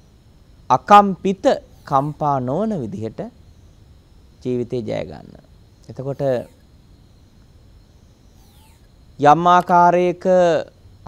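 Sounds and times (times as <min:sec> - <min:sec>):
low background hum: 0:00.0 - 0:11.0
faint sliding high chirps: 0:01.6 - 0:02.5, 0:05.7 - 0:09.4.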